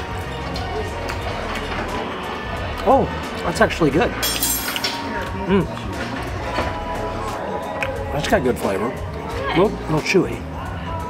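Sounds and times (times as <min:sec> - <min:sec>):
background music: 0:00.0 - 0:11.0.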